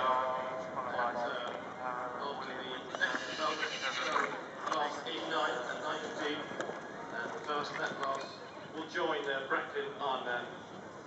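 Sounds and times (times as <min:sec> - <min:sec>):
horse whinnying: 0:02.9 - 0:04.4.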